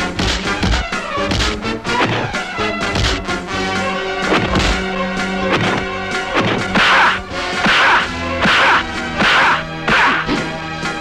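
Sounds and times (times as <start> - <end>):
film score music: 0.0 - 11.0
swishing punch hits: 0.1 - 3.3, 4.3 - 10.5.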